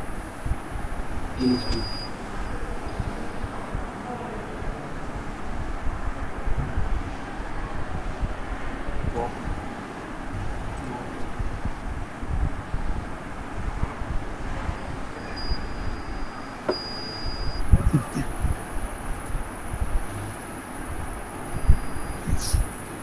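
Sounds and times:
low rumbling noise: 0.0 - 23.0.

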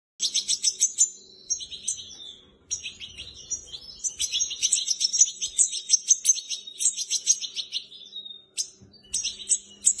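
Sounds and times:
fledglings chirping: 0.2 - 10.0.

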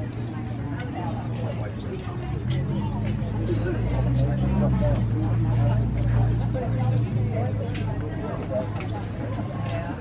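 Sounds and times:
people talking indistinctly: 0.0 - 10.0
steady low hum: 0.0 - 10.0.

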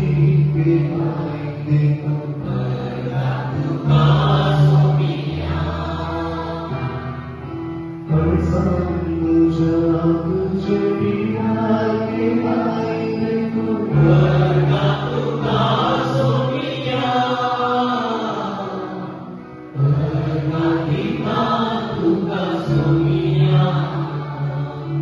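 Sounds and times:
voices singing slow chant: 0.0 - 7.6, 12.2 - 25.0
sustained keyboard chords: 0.0 - 25.0.

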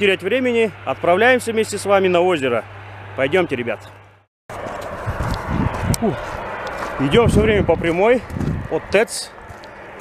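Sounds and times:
footsteps on gravel: 4.5 - 10.0.

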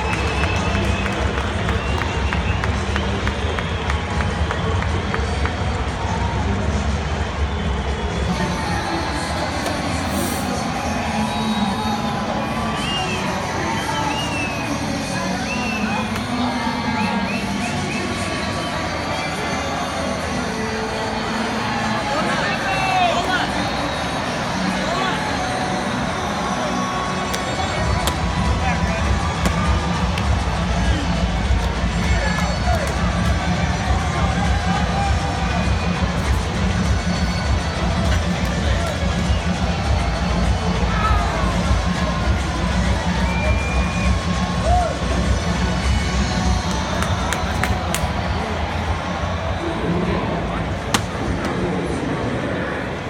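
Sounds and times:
crowd chatter: 0.0 - 53.0
many voices talking: 0.0 - 53.0.

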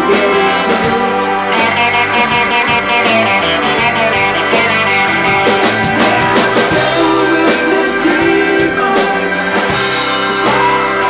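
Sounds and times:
drum and cymbal hits: 0.0 - 11.0
electric guitars: 0.0 - 11.0
keyboard: 0.0 - 11.0.

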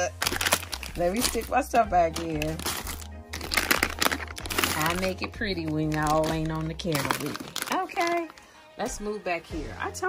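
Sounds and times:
plastic packaging crinkling: 0.0 - 8.5.

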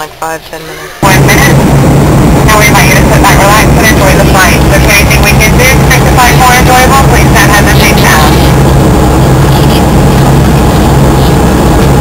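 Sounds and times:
low hum: 0.7 - 12.0
airliner engines droning in cabin: 0.9 - 12.0.

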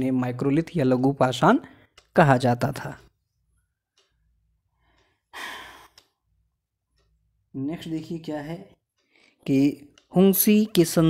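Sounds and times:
man breathing: 4.7 - 6.0, 9.0 - 9.4.

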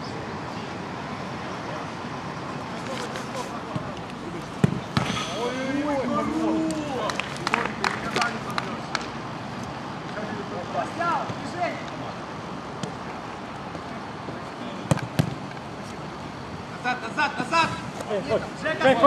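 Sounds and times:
ball being kicked: 4.6 - 5.2.

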